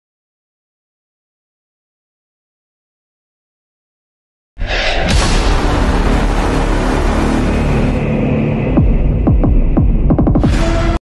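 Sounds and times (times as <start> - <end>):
loud low electronic hum: 5.1 - 11.0.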